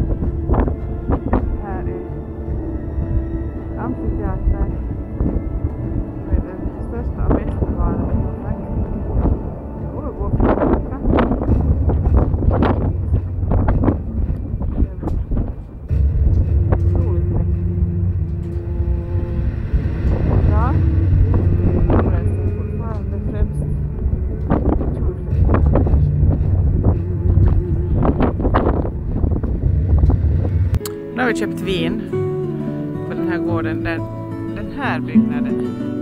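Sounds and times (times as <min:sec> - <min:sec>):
wind buffeting microphone: 0:00.0 - 0:32.2
guitar music: 0:00.0 - 0:36.0.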